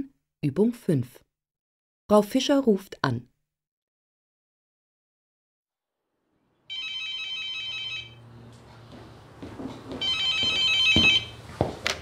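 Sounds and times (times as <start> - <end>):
telephone ringing: 6.7 - 8.5, 9.9 - 11.4.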